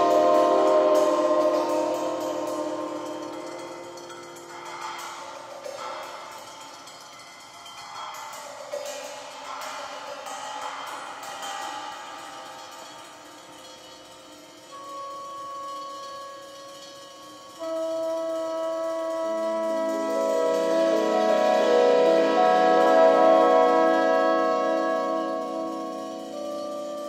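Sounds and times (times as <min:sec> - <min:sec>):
cymbals shimmering: 0:00.0 - 0:27.0
long held notes: 0:00.0 - 0:27.0.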